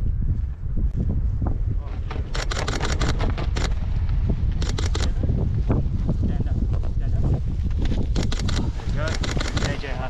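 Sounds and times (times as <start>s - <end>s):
wind buffeting microphone: 0.0s - 10.0s
sharp crackles: 7.8s - 10.0s.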